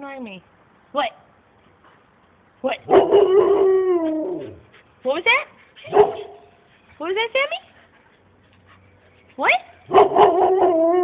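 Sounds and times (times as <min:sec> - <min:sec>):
dog howling: 0:02.9 - 0:04.6, 0:09.9 - 0:11.0.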